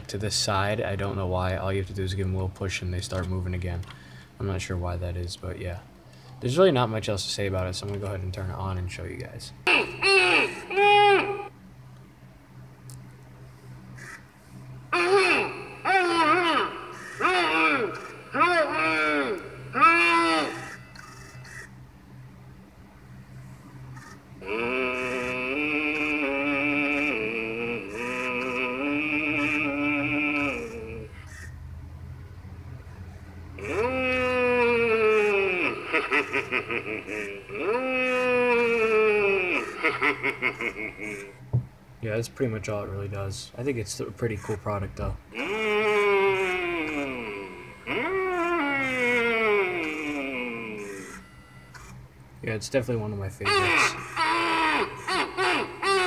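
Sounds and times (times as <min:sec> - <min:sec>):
low steady hum: 0:00.0 - 0:56.0
long falling moans: 0:14.9 - 0:21.6, 0:24.0 - 0:31.4, 0:33.5 - 0:41.5, 0:45.3 - 0:51.3
recorded character voice chuckling: 0:24.4 - 0:31.2, 0:33.6 - 0:41.5, 0:45.3 - 0:51.2, 0:53.4 - 0:56.0.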